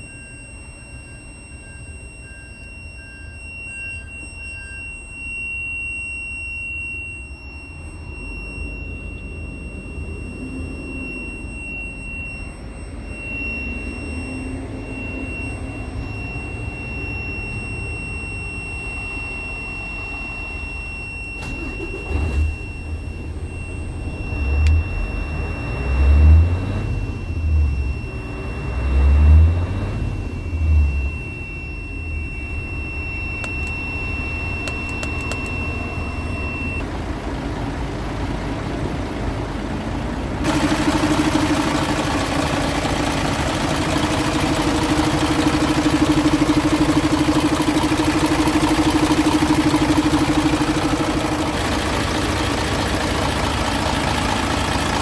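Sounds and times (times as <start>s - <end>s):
steady high tone: 0.0s - 55.0s
truck diesel engine idling and revving: 7.7s - 55.0s.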